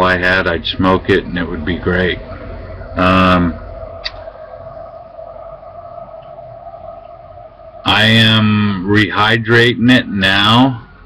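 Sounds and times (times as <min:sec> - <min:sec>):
two-tone background hum: 0:00.0 - 0:11.0.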